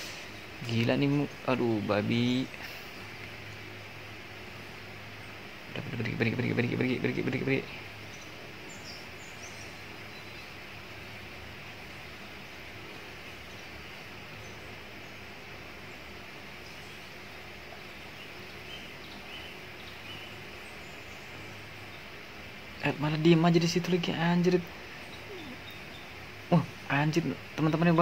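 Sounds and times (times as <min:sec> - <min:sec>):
forest background noise: 0:00.0 - 0:28.0.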